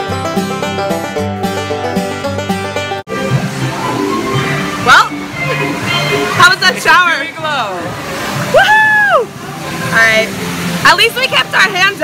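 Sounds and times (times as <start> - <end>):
amusement ride background music: 0.0 - 12.0.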